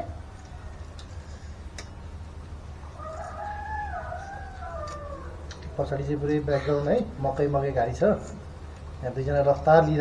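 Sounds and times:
rooster crowing: 2.8s - 5.5s.

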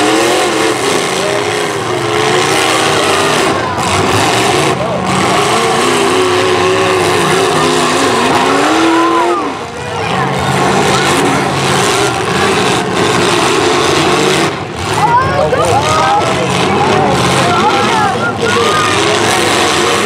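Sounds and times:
car engines revving: 0.0s - 20.0s
cars ramming each other: 0.0s - 20.0s
steady rush of noise: 0.0s - 20.0s.

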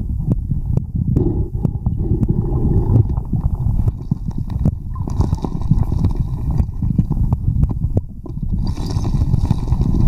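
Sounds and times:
muffled underwater churning: 1.0s - 10.0s.

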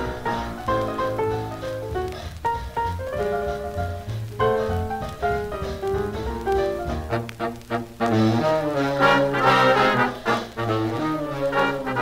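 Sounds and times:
swing band playing: 0.0s - 12.0s.

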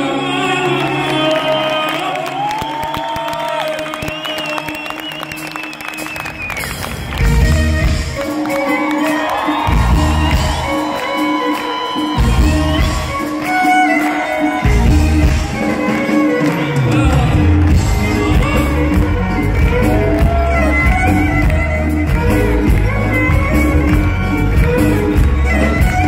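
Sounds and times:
audience cheering and clapping: 0.0s - 26.0s
violin playing sliding phrases: 7.1s - 26.0s
band heavy low accents: 14.5s - 26.0s.

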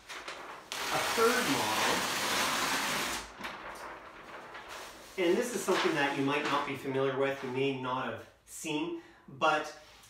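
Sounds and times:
paper rustling and crackling: 0.0s - 7.8s.

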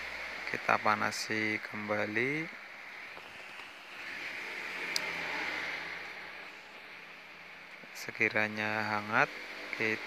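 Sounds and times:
hot-air blower hissing: 0.0s - 10.0s.

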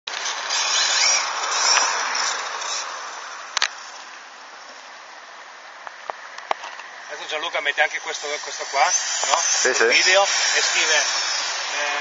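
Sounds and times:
tyre noise on asphalt: 0.1s - 7.2s
electric motor whining: 7.9s - 12.0s.

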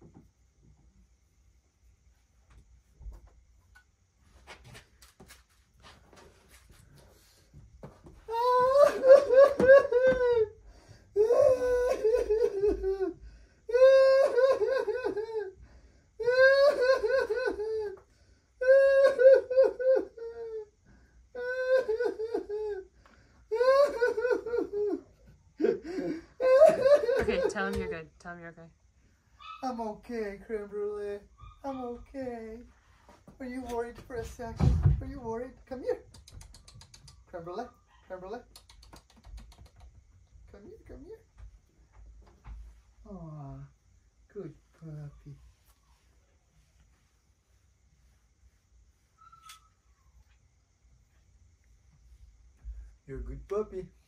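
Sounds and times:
person wailing and sobbing: 8.2s - 10.6s, 11.2s - 15.6s, 16.2s - 18.0s, 18.6s - 20.8s, 21.4s - 22.9s, 23.5s - 27.9s.

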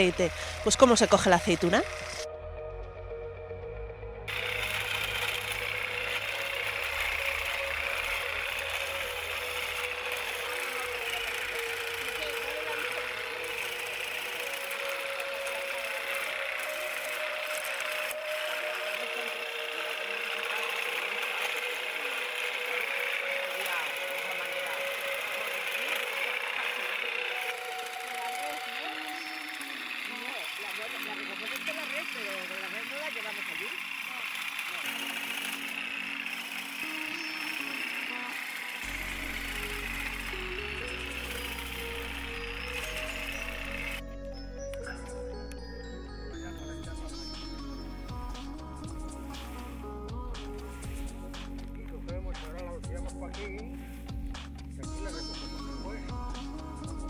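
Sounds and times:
harvester motor running: 0.0s - 57.0s
music: 0.0s - 57.0s.

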